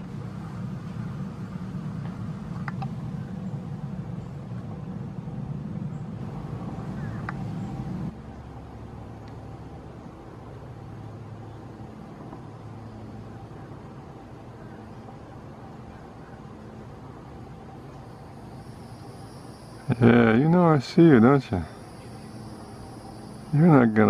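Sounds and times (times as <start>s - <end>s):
low background rumble: 0.0s - 24.0s.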